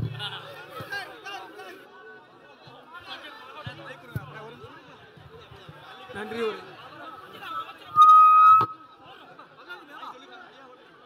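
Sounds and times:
crowd chatter: 0.0 - 11.0
high whistle-like tone: 7.9 - 8.9.

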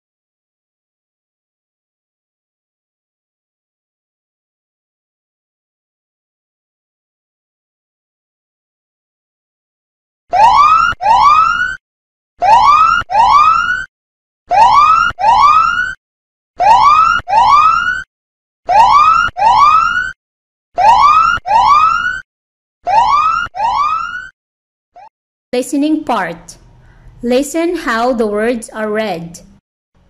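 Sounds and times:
electronic whoop alarm: 10.3 - 11.8, 12.4 - 13.9, 14.5 - 16.0, 16.6 - 18.1, 18.7 - 20.2, 20.8 - 22.2, 22.8 - 24.3.

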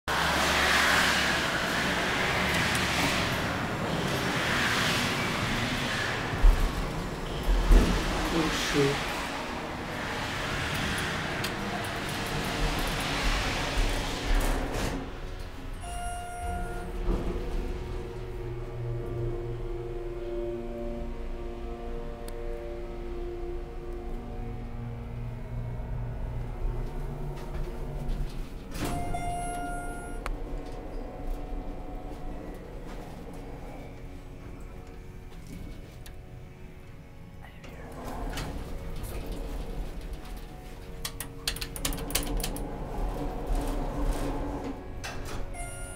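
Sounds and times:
elevator doors closing: 0.1 - 45.9
elevator low hum: 0.1 - 45.9
elevator chime: 15.7 - 19.5, 28.7 - 34.8, 45.0 - 45.9.

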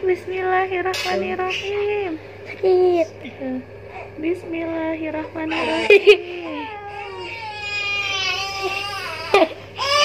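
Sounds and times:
baby crying: 5.4 - 10.0.

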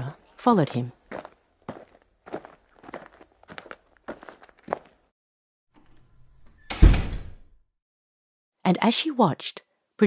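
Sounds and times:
footsteps walking: 0.6 - 5.1.

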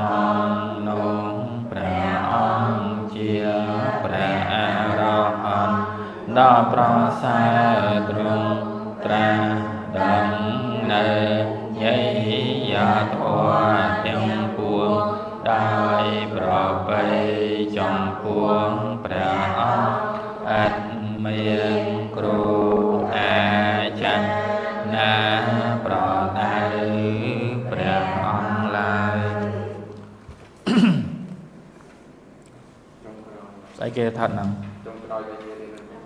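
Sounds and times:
group chanting in unison: 0.0 - 30.0.

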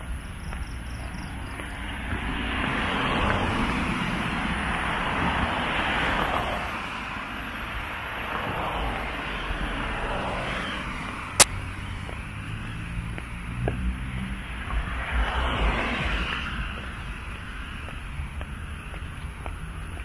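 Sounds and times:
road traffic passing: 0.0 - 20.0.

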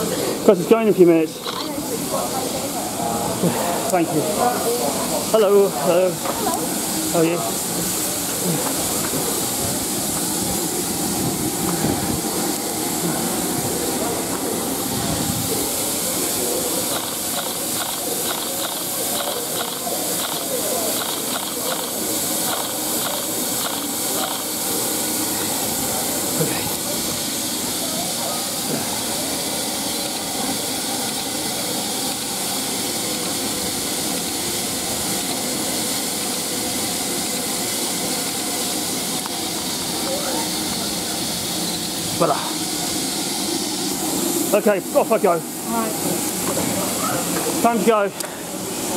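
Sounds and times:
steam locomotive hissing: 0.0 - 48.9.

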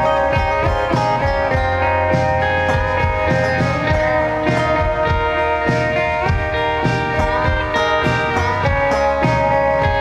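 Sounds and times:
bass and drums: 0.0 - 10.0
electric guitars gliding notes: 0.0 - 10.0.

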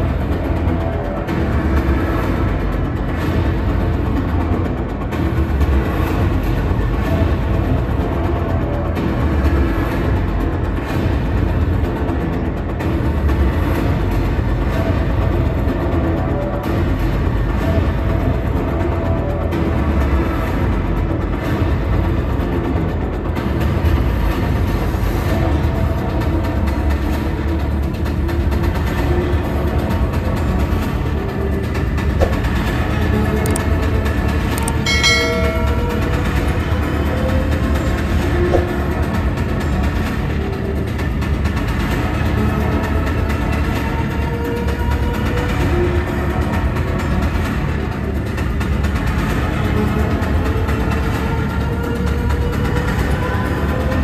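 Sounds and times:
music playing: 0.0 - 23.6, 25.8 - 46.8
busy exhibition hall din: 0.0 - 54.0
brief chord-like tone: 34.8 - 36.3.

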